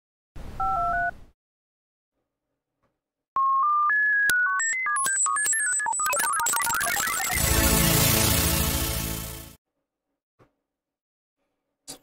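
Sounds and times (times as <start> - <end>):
paired electronic beeps: 3.4 - 9.0
electronic beeps stepping up in pitch: 3.4 - 9.6.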